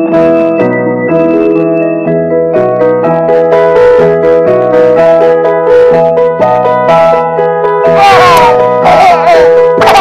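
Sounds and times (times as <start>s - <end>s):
electric piano music: 0.0s - 10.0s.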